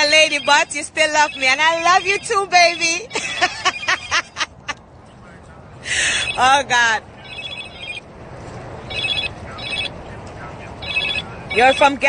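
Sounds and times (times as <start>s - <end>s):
mobile phone ringtone: 0.0s - 4.0s, 6.0s - 6.6s, 7.2s - 8.1s, 8.8s - 10.0s, 10.8s - 12.0s.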